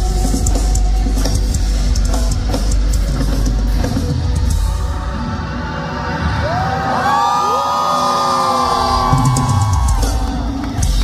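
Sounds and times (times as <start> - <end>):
concert crowd cheering: 4.8 - 11.0
high long-held screams: 5.6 - 10.5.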